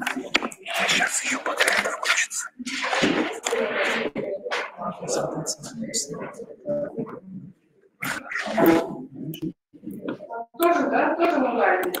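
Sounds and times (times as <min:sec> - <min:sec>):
indistinct voices: 0:00.0 - 0:12.0.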